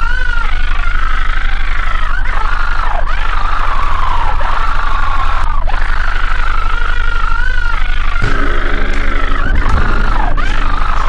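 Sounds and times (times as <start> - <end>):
high wavering whine: 2.3 - 11.0
low drone: 2.8 - 11.0
lower buzzing tone: 4.9 - 11.0.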